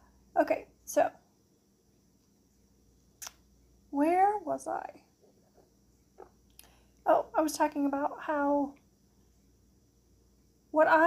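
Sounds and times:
woman speaking: 0.4s - 1.2s, 3.9s - 5.0s, 7.1s - 8.8s, 10.8s - 11.0s.

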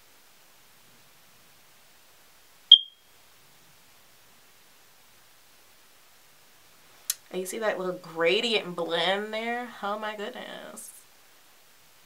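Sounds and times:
short high-pitched chirp: 2.7s - 3.0s.

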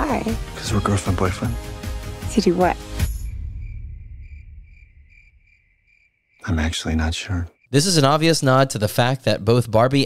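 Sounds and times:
low rumble: 3.0s - 5.7s
crickets chirping: 3.0s - 8.2s.

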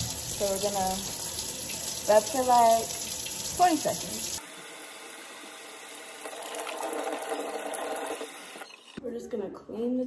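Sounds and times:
faucet water splashing into sink: 0.0s - 9.0s.

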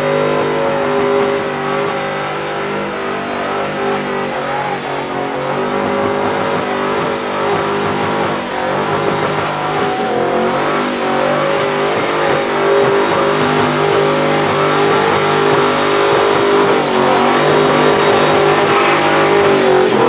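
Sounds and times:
engine revving high: 0.0s - 20.0s
tyres spinning: 0.0s - 20.0s.

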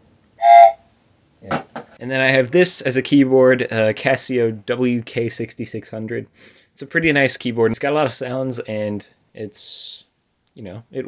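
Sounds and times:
toy train whistle blast: 0.4s - 0.8s.

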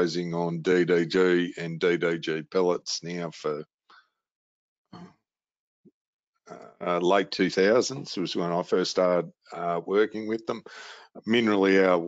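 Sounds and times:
man saying uh: 0.0s - 3.6s, 6.5s - 12.0s.

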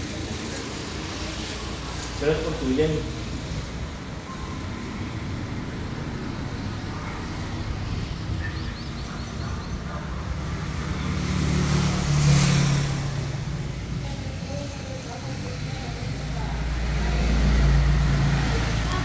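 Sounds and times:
low traffic rumble: 0.0s - 19.0s
vehicle passing: 0.0s - 19.0s.

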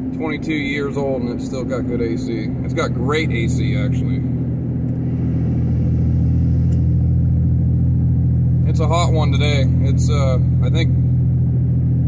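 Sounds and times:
engine and road drone inside car: 0.0s - 12.0s.

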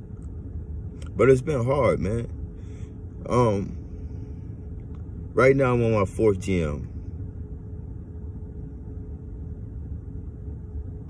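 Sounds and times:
car engine rumble: 0.0s - 11.0s
faint steady hum: 0.0s - 11.0s.

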